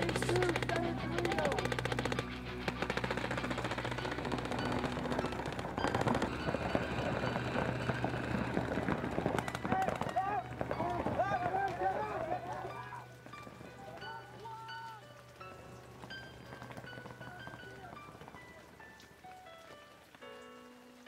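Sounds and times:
paintball markers firing: 0.0 - 11.9
music soundtrack: 0.0 - 21.0.

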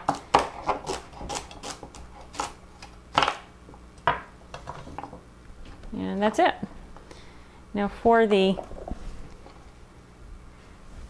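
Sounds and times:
knife chopping on wooden board: 0.0 - 2.5.

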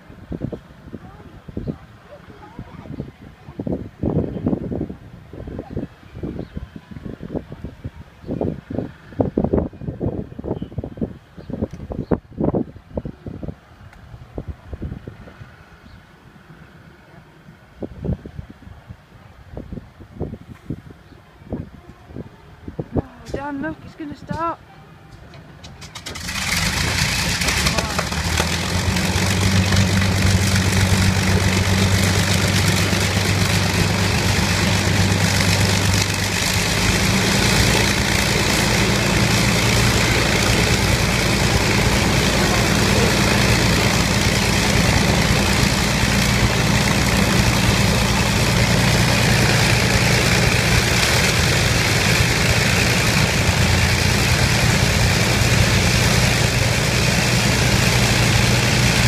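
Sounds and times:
piston aircraft engines droning: 23.2 - 59.0.

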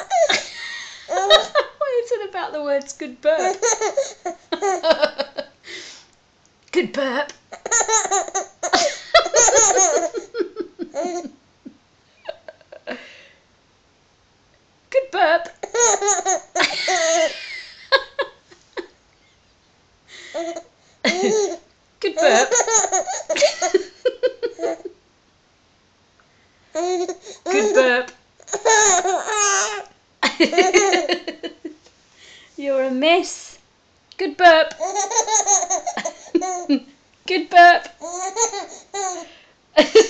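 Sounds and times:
baby laughing: 0.0 - 1.6, 3.4 - 5.3, 7.5 - 11.3, 15.6 - 18.9, 20.3 - 21.6, 22.2 - 24.9, 26.8 - 31.6, 34.7 - 36.8, 37.9 - 39.3.

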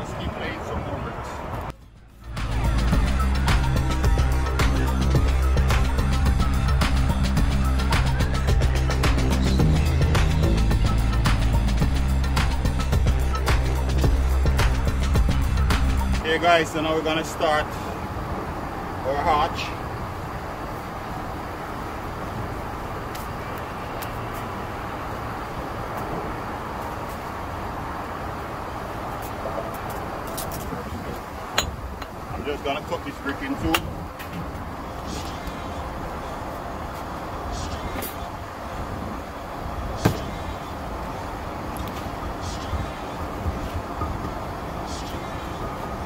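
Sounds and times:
distant traffic hum: 0.0 - 46.0.

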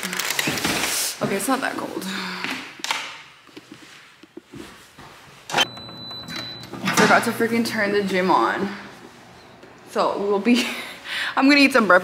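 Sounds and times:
footsteps: 3.5 - 5.5.

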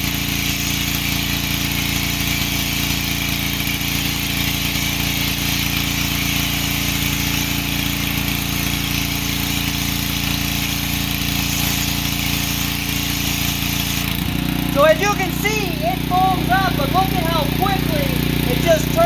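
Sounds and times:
foam cannon spraying hiss: 0.0 - 14.4
pressure washer engine running: 0.0 - 19.0.

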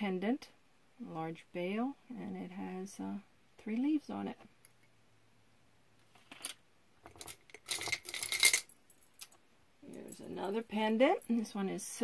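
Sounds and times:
metal jewelry clinking: 6.4 - 11.5.

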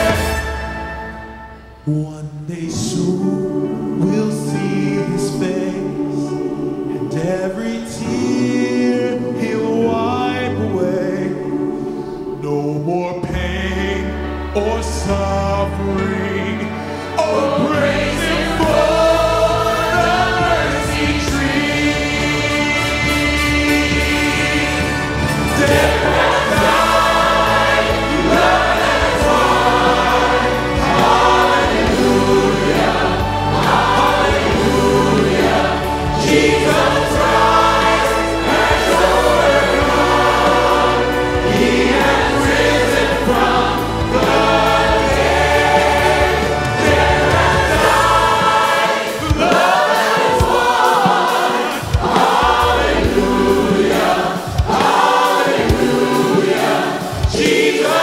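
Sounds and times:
choir singing worship song: 0.0 - 58.0
instrumental accompaniment: 0.0 - 58.0
sharp rhythmic hits: 17.9 - 58.0.

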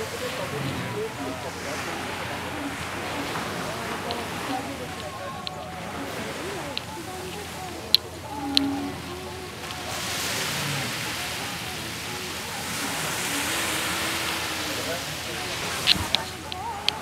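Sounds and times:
faint indistinct voices: 0.0 - 17.0.

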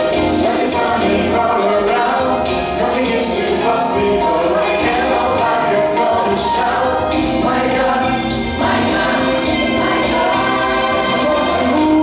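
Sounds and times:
male soloist singing: 0.0 - 9.4, 10.0 - 12.0
gospel choir singing: 0.0 - 12.0
instrumental backing with bass: 0.0 - 12.0.

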